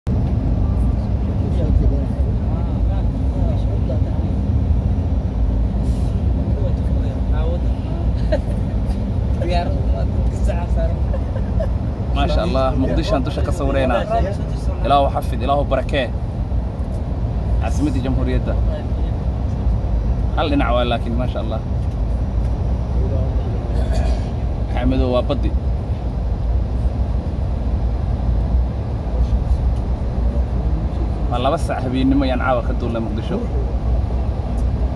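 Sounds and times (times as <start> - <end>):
aircraft cabin drone: 0.1 - 34.9.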